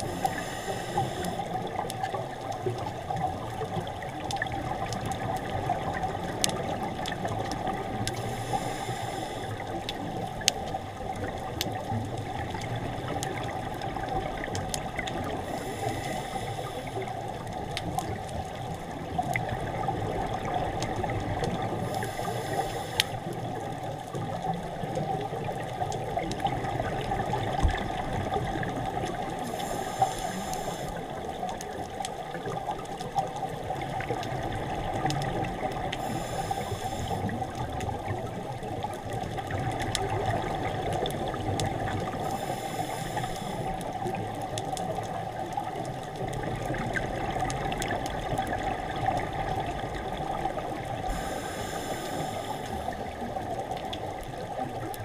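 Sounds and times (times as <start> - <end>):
muffled underwater rush: 0.0 - 55.0.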